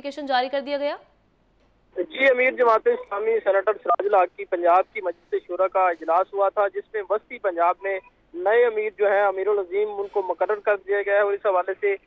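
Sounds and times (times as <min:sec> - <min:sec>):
man talking over telephone: 0:02.0 - 0:12.0.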